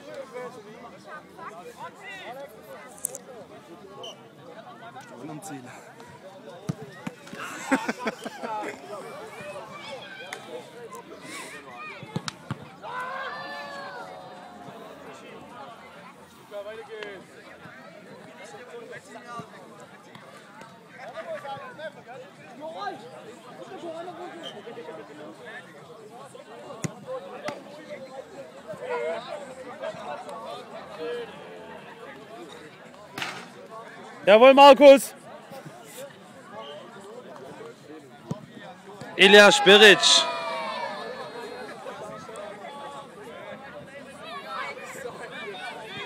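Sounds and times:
chatter of voices: 0:00.0 - 0:46.0
long drawn-out shout: 0:39.2 - 0:41.7.

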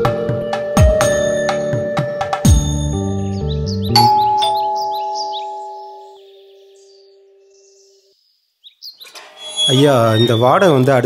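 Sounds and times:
faint bird chirps: 0:03.8 - 0:11.0
electronic doorbell chime: 0:04.0 - 0:06.2.

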